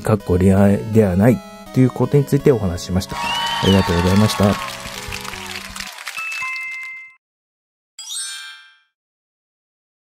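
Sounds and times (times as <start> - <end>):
background music: 0.0 - 7.0.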